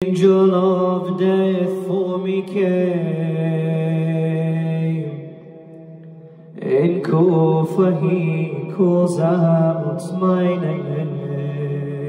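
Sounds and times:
man chanting a lament: 0.0s - 5.7s, 6.4s - 12.0s.

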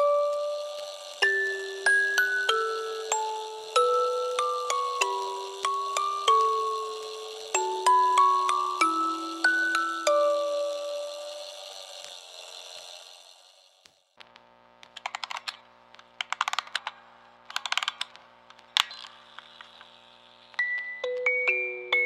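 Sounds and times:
music box melody: 0.0s - 12.6s, 20.6s - 22.0s
faint clicking: 0.0s - 21.4s.

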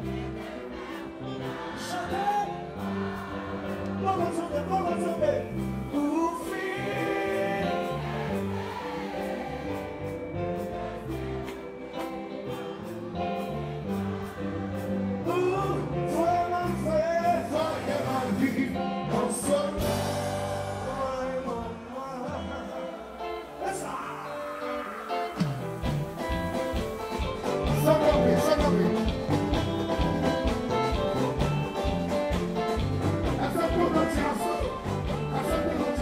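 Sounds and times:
live band playing: 0.0s - 36.0s
person singing: 5.8s - 8.2s, 15.1s - 25.9s, 27.4s - 29.6s, 33.2s - 36.0s.

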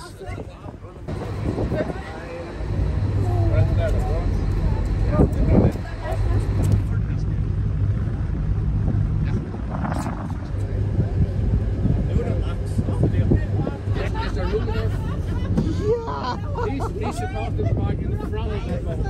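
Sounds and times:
boat engine rumbling: 0.0s - 19.0s
people's voices: 0.0s - 19.0s.

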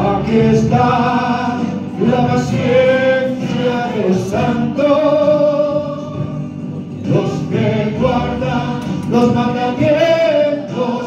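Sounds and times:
hymn singing over loudspeaker: 0.0s - 11.0s.

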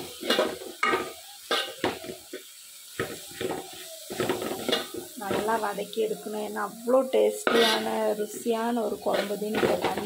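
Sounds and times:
metal spoon scraping a pan: 0.0s - 5.7s, 7.2s - 10.0s
light sizzle: 0.0s - 10.0s.

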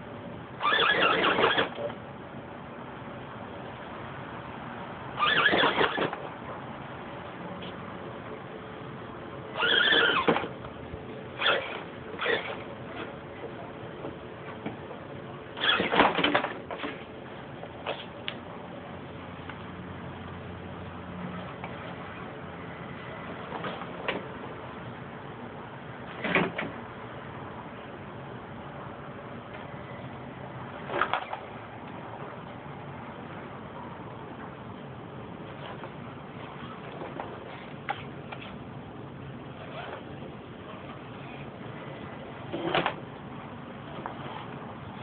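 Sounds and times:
toy car electric motor whining: 0.6s - 1.8s, 5.2s - 6.2s, 9.6s - 10.5s, 11.4s - 12.6s, 15.6s - 16.1s.

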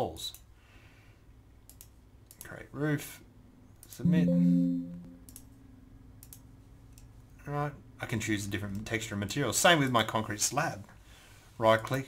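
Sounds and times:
faint computer mouse clicks: 1.6s - 2.5s, 6.2s - 7.1s.

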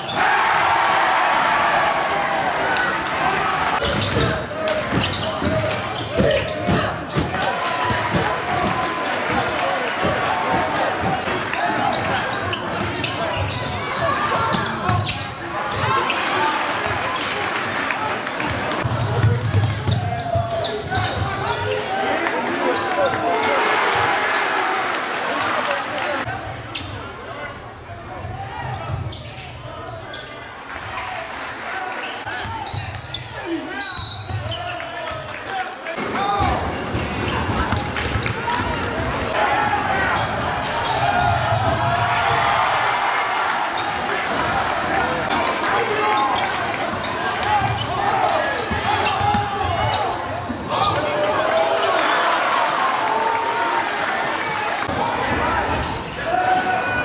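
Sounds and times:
crowd chatter: 0.0s - 57.0s.

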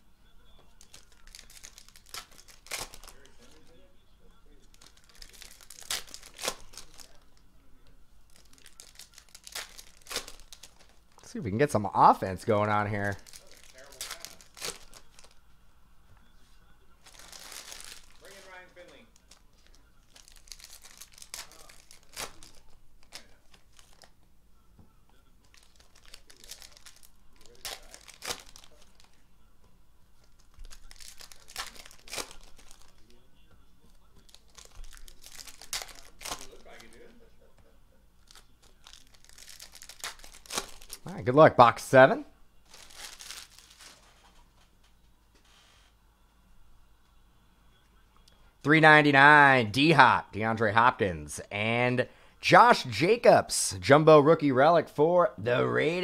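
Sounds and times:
foil packs crinkling and tearing: 0.8s - 3.7s, 4.7s - 7.3s, 8.3s - 11.8s, 12.5s - 15.4s, 17.0s - 24.2s, 25.4s - 29.2s, 30.3s - 33.2s, 34.2s - 37.1s, 38.2s - 41.4s, 42.6s - 44.2s.

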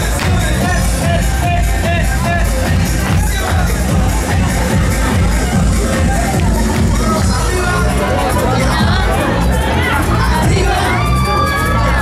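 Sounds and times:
crowd cheering and shouting: 0.0s - 12.0s
loud dance music: 0.0s - 12.0s.

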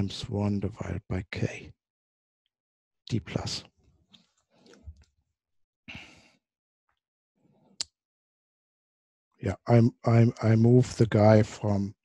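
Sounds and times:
person sighing: 5.9s - 6.3s.

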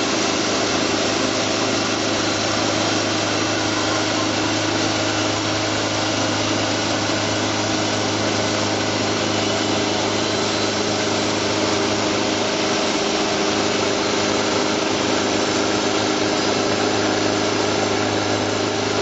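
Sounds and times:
band sawmill motor drone: 0.0s - 19.0s.

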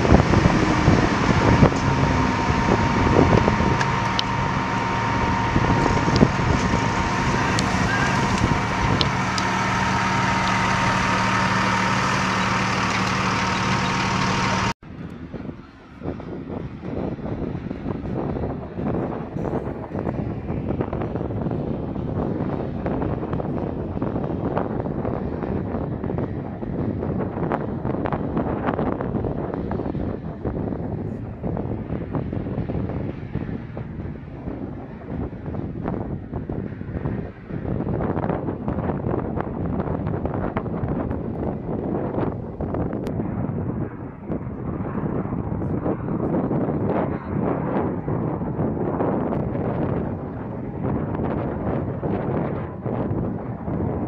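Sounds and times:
truck engine idling: 0.0s - 14.8s
turboprop engine rumble: 0.0s - 54.0s
wind buffeting microphone: 0.0s - 54.0s.

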